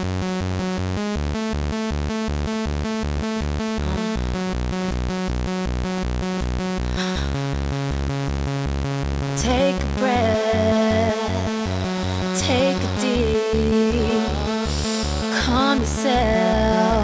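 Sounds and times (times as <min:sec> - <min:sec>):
pulsing synth bass and chords: 0:00.0 - 0:17.0
rapid electronic dance beat: 0:00.0 - 0:17.0.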